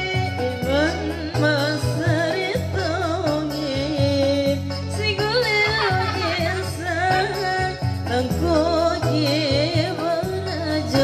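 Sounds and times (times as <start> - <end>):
backing music with low beat: 0.0 - 11.0
woman singing into a microphone: 0.0 - 11.0.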